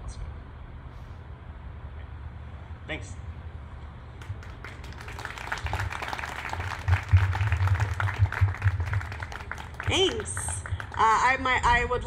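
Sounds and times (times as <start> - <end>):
audience applauding: 4.2 - 11.2.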